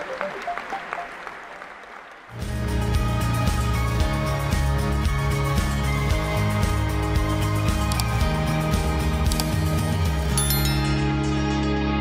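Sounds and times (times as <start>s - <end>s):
audience applauding: 0.0s - 2.4s.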